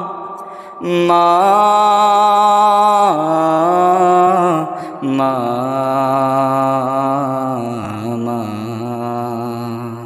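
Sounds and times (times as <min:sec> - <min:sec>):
person singing a long note: 0:00.0 - 0:10.0.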